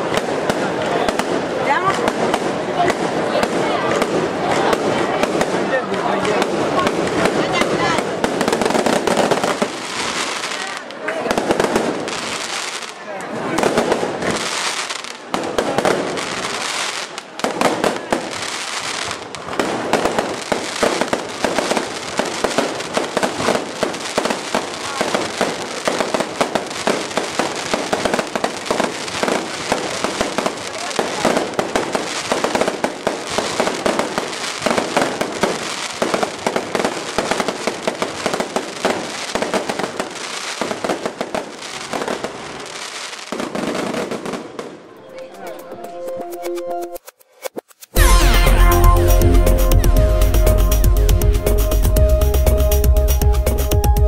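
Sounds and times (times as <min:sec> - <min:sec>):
fireworks bangs and crackling: 0:00.0 - 0:45.8.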